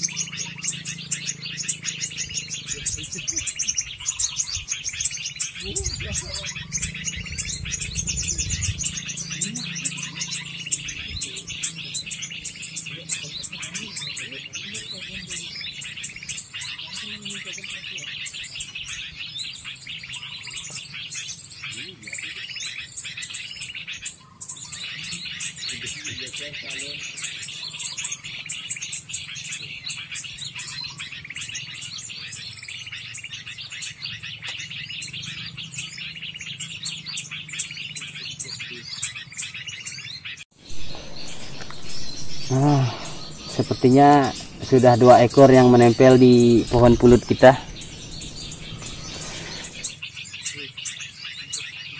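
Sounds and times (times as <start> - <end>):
songbirds chirping and twittering: 0.0 - 51.9.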